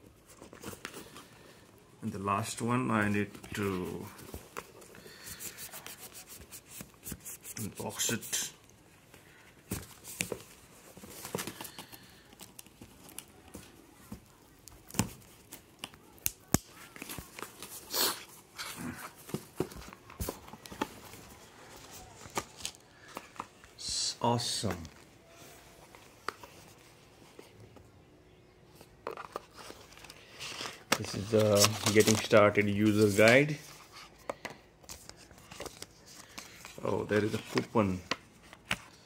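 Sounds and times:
box clicks and rustling: 0:29.0 - 0:33.5.

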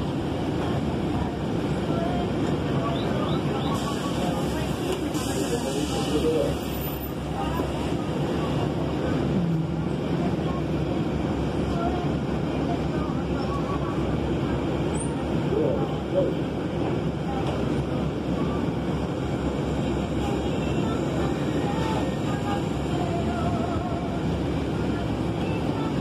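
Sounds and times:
bus engine idling: 0:00.0 - 0:26.0
faint passenger voices: 0:00.0 - 0:26.0.

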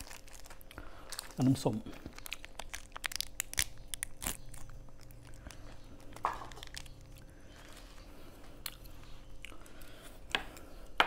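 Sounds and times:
plastic bag crinkling and tearing: 0:00.0 - 0:08.8.

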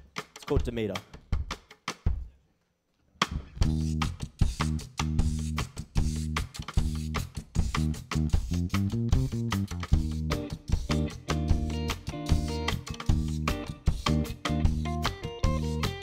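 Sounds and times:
indie pop band playing: 0:03.4 - 0:16.0.

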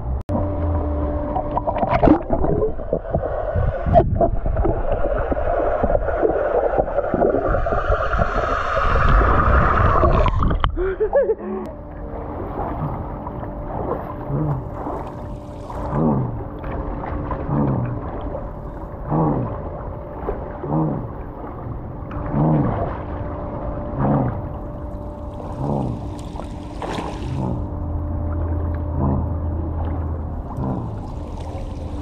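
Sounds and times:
muffled bubbly underwater sound: 0:01.3 - 0:32.0
pool water sloshing and gurgling: 0:01.3 - 0:32.0.

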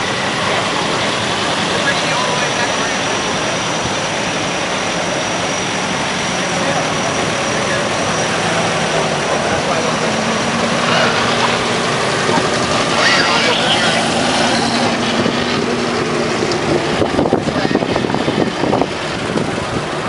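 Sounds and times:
car engines driving past slowly: 0:00.0 - 0:20.0
background voices: 0:06.2 - 0:18.5.

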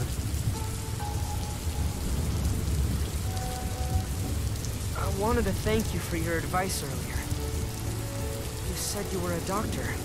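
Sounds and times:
steady rain hiss: 0:00.0 - 0:10.0.

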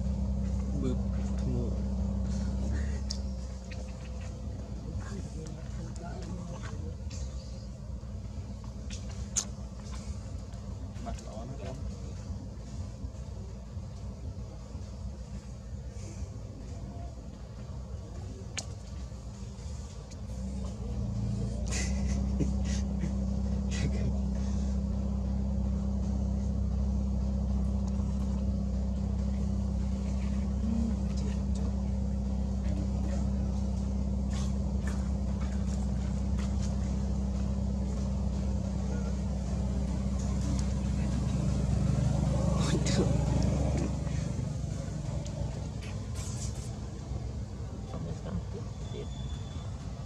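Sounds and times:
engine idling: 0:00.0 - 0:50.0.

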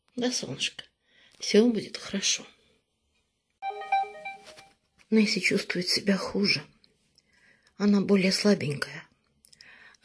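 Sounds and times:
electronic jingle: 0:03.6 - 0:04.8.

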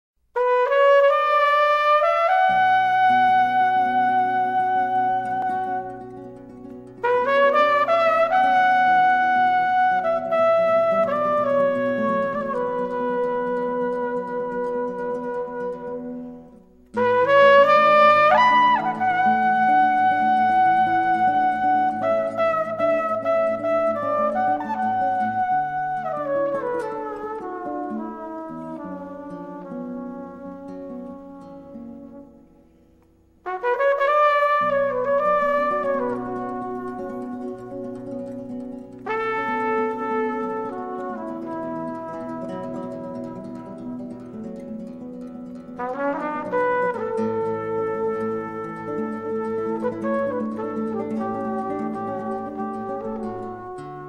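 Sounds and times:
acoustic guitar: 0:00.3 - 0:54.0
flugelhorn playing: 0:00.4 - 0:32.8, 0:33.4 - 0:54.0.

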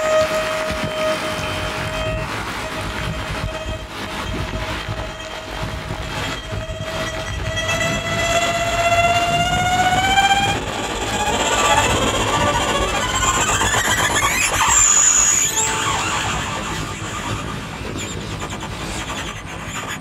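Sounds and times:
violin bowed note: 0:00.0 - 0:13.7
low rumbling noise: 0:00.0 - 0:20.0
scratchy violin bowing: 0:00.0 - 0:20.0.

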